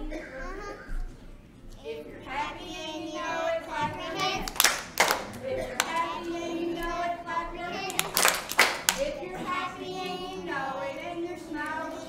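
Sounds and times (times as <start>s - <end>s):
children singing: 1.8s - 12.0s
children clapping hands: 4.1s - 6.4s, 7.8s - 9.1s.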